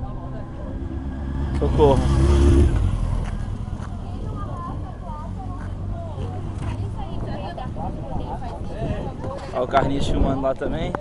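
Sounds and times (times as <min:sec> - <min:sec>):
motorcycle passing close: 0:00.0 - 0:08.6.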